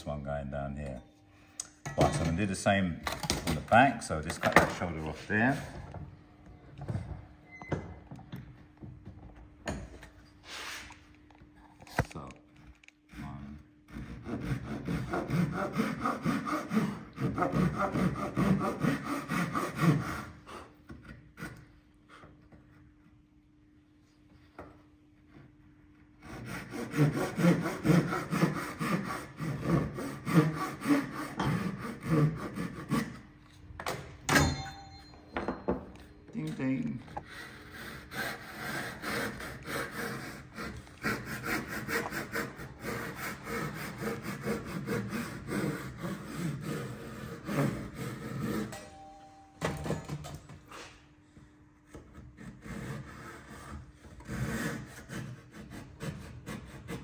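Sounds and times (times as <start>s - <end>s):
hand saw cutting wood: 13.1s - 21.7s, 26.2s - 33.2s, 37.2s - 49.0s, 51.9s - 57.0s.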